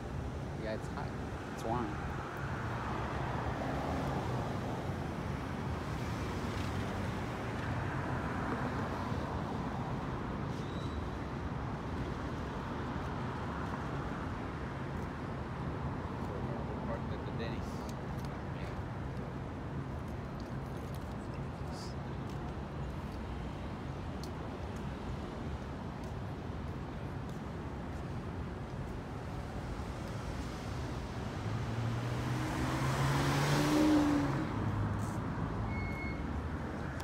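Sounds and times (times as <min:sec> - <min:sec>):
street traffic rumble: 0:00.0 - 0:37.0
car passing by: 0:02.4 - 0:04.9, 0:29.6 - 0:37.0.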